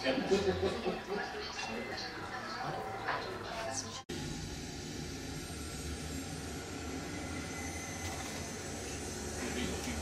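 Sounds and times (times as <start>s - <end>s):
electronic low rumbling drone: 4.1s - 10.0s.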